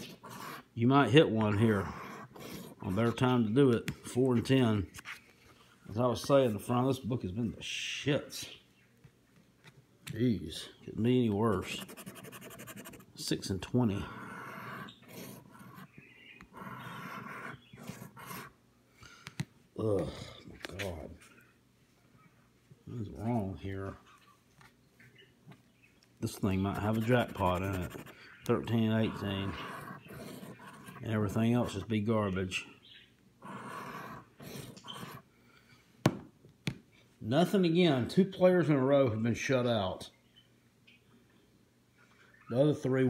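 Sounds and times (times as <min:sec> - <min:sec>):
lottery ticket being scratched: 0:00.0 - 0:00.7, 0:11.5 - 0:13.3, 0:16.6 - 0:18.6, 0:26.3 - 0:31.8.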